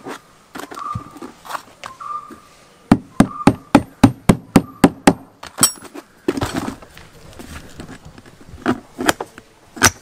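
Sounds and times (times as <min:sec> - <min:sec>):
hammer striking tyre: 0:02.9 - 0:05.9.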